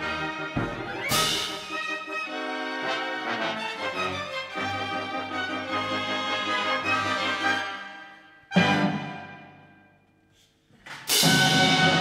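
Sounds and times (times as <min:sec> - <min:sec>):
orchestral percussion: 0:00.0 - 0:07.8, 0:08.5 - 0:10.0, 0:11.0 - 0:12.0
orchestra playing ballet music: 0:00.0 - 0:09.9, 0:11.1 - 0:12.0.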